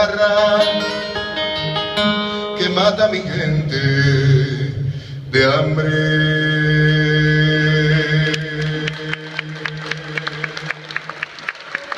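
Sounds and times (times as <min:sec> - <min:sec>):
audience applause: 0:08.6 - 0:11.9.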